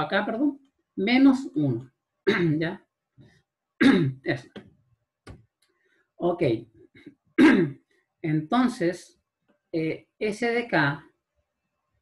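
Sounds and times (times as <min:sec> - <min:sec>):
man speaking: 0:00.0 - 0:02.9, 0:03.8 - 0:04.6, 0:06.2 - 0:06.7, 0:08.2 - 0:09.2, 0:09.8 - 0:11.1
man clearing throat: 0:02.3 - 0:02.7, 0:03.8 - 0:04.2, 0:07.4 - 0:07.8.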